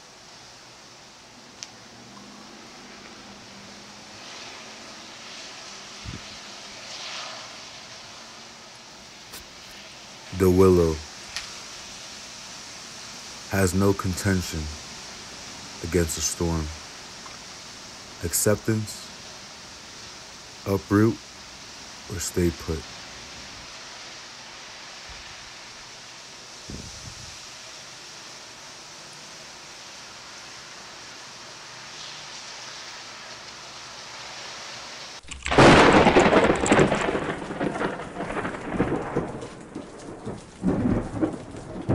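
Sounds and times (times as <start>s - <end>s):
rain: 0.0s - 41.9s
faint click: 1.6s - 1.8s
storm wind: 1.9s - 27.7s, 35.4s - 41.9s
thunder rumbling: 35.4s - 41.9s.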